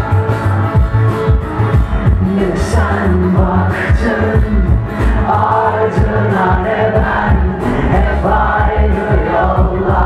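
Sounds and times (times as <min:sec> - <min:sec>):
voices singing: 0:02.4 - 0:10.0.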